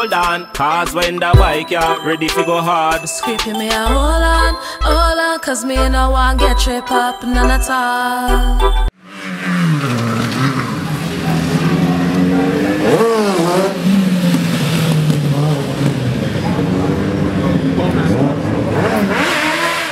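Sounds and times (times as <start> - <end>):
motorcycle engine revving: 9.0 - 19.9.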